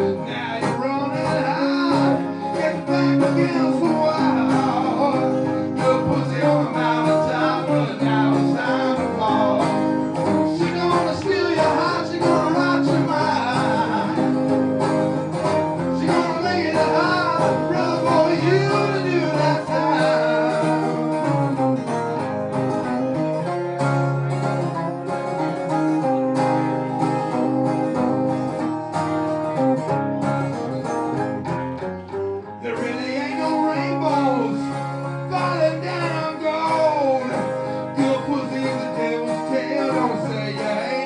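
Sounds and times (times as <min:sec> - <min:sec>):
man singing through microphone: 0:00.0 - 0:14.5, 0:15.8 - 0:21.2, 0:32.6 - 0:41.0
acoustic guitar strumming: 0:00.0 - 0:41.0.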